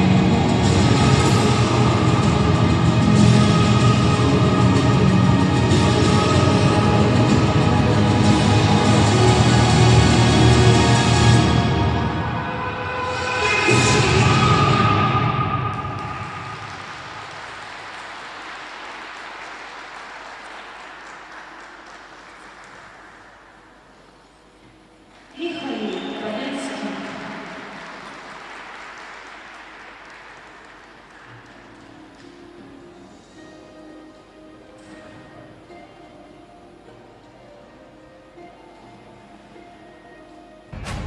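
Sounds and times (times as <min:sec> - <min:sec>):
echoing voice over hall: 0:00.0 - 0:41.0
audience applause: 0:13.4 - 0:23.8, 0:26.8 - 0:32.2.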